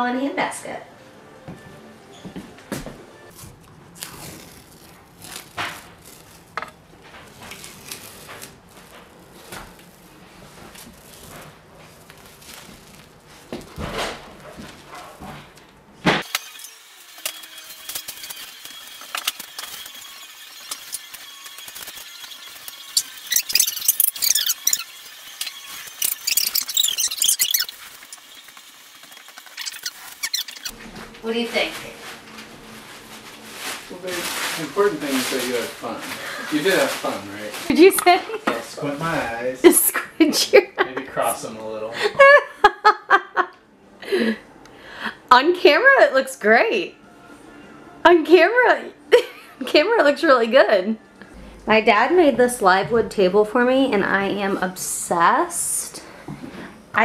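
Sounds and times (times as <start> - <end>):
rustling: 3.3 - 15.8, 25.7 - 39.4
tape being peeled off wall: 3.3 - 16.5, 17.2 - 39.3.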